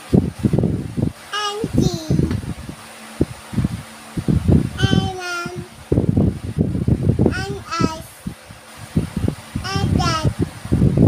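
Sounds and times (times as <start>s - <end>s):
toddler babbling: 1.4s - 2.3s, 4.8s - 5.7s, 7.3s - 8.1s, 9.7s - 10.3s.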